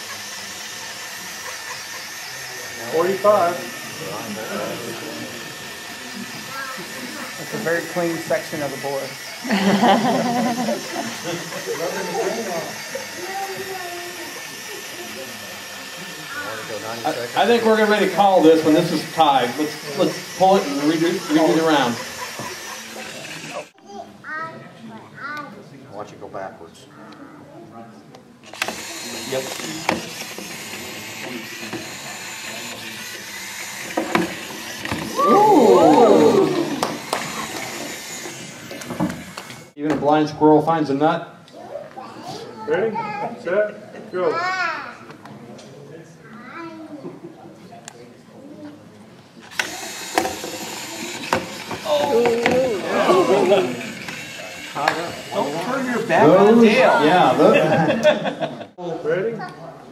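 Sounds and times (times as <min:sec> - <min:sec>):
small electric motors whirring: 0:00.0 - 0:23.8, 0:28.4 - 0:39.8, 0:49.4 - 0:58.4.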